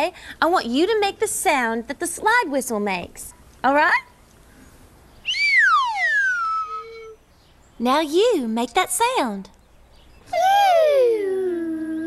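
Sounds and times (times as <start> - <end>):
slide whistle glide: 5.2 - 7.2.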